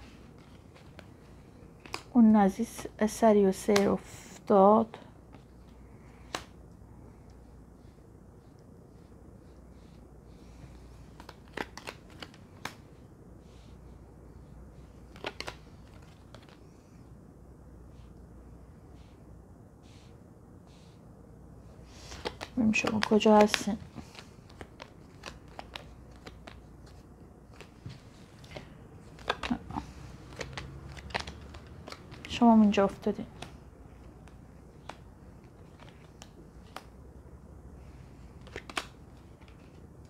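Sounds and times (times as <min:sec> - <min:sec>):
cards being shuffled: 0:00.0 - 0:02.9, 0:05.3 - 0:06.6, 0:08.4 - 0:13.7, 0:14.7 - 0:16.8, 0:21.8 - 0:37.0, 0:38.1 - 0:40.0.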